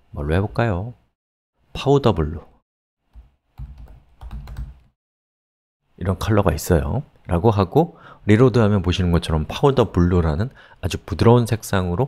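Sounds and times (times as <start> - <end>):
computer keyboard typing: 3.1 - 4.9.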